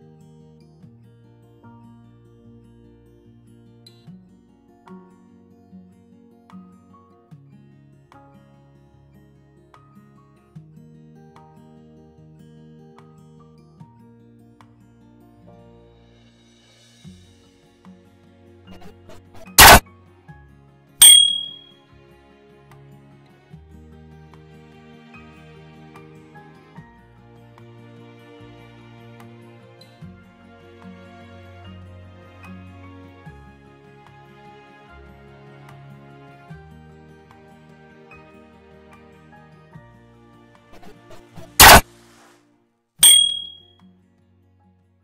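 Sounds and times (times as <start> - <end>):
bright bell ding: 18.8 - 19.8, 21.0 - 21.7, 40.8 - 41.8, 43.0 - 43.6
soft background music: 21.7 - 42.3.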